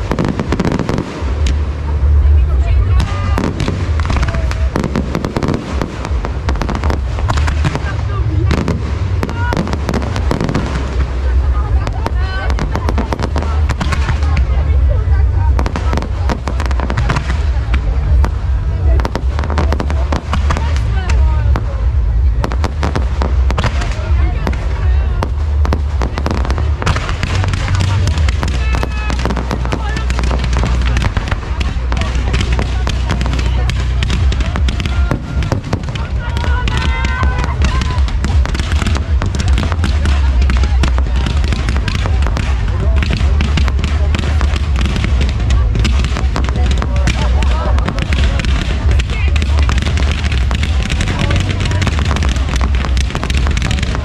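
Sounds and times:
fireworks crackling and popping: 0:00.0 - 0:54.0
heavy low rumble: 0:00.0 - 0:54.0.

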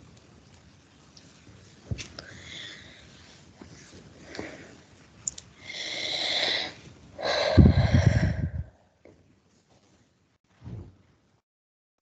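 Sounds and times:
person breathing out heavily: 0:05.6 - 0:08.8
breath popping on microphone: 0:07.4 - 0:08.7.

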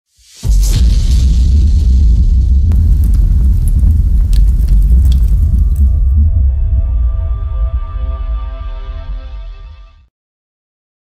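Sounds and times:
deep explosion rumble: 0:02.5 - 0:06.8
fire crackles: 0:02.7 - 0:06.2.

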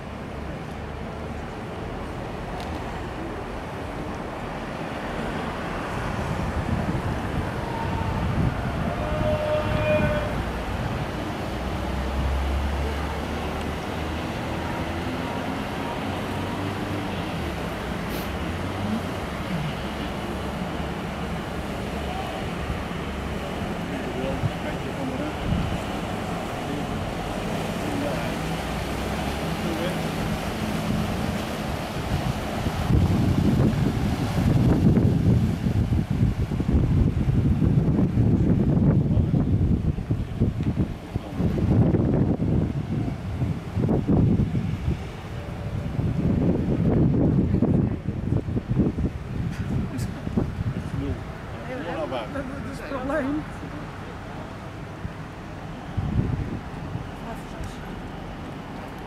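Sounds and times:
ship engine running: 0:00.0 - 0:59.0
wind buffeting microphone: 0:01.8 - 0:13.0, 0:13.6 - 0:59.0.

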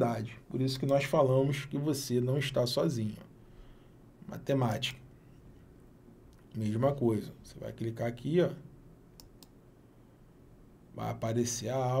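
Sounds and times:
computer mouse clicks: 0:09.2 - 0:09.6.

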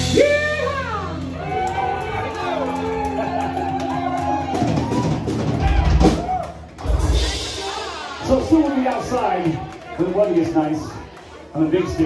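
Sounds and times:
country band playing: 0:00.0 - 0:10.8.

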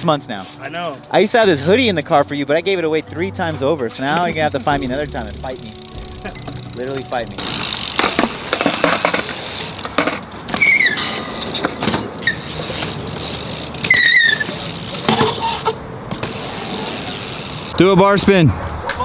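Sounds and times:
bike tyres rolling on concrete: 0:04.1 - 0:17.8
high-pitched tyre squeals: 0:10.5 - 0:15.8.

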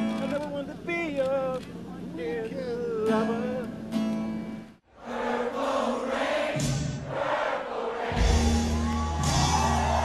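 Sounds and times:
guitar accompaniment: 0:02.7 - 0:04.8, 0:08.2 - 0:10.0.

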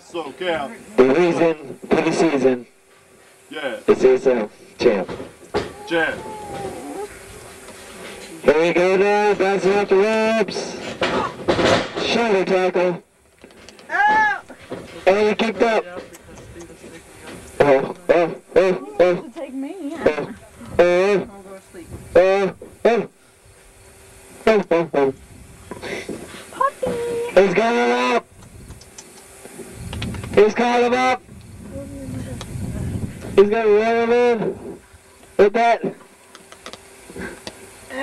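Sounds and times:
raised voices calling out: 0:05.6 - 0:07.3, 0:13.9 - 0:14.6, 0:17.8 - 0:20.8.

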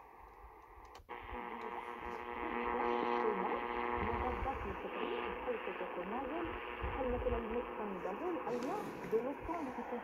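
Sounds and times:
radio static hiss: 0:00.0 - 0:10.0
radio station broadcast: 0:01.1 - 0:10.0.

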